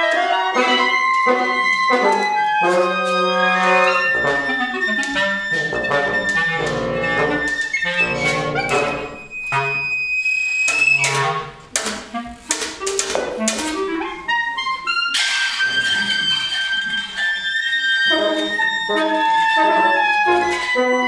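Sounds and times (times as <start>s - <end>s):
wind quintet chamber music: 0.0s - 21.0s.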